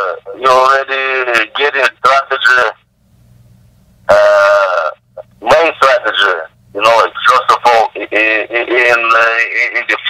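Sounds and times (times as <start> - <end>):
telephone line hum: 0.0 - 10.0.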